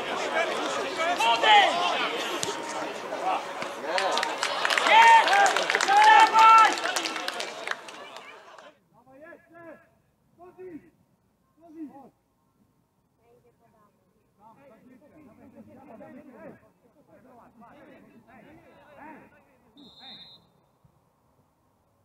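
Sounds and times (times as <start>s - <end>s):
players shouting: 0.0s - 8.7s.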